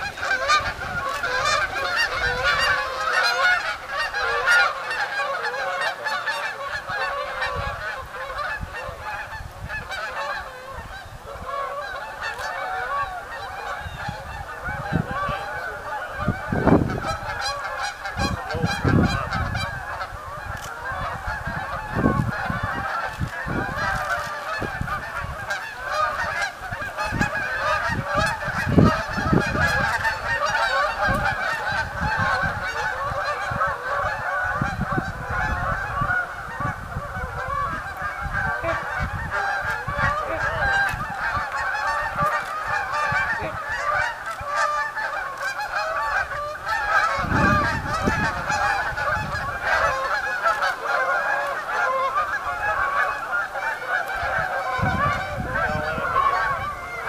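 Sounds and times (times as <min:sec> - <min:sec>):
flock of geese honking: 0:00.0 - 0:57.0.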